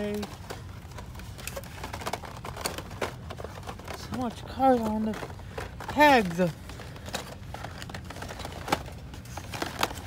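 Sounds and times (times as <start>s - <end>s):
small clicks and rustles: 0.0s - 10.0s.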